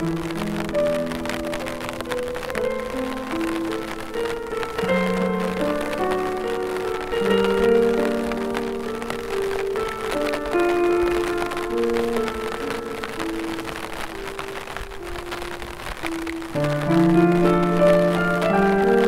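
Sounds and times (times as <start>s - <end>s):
piano music: 0.0s - 19.0s
rain patter: 0.0s - 19.0s.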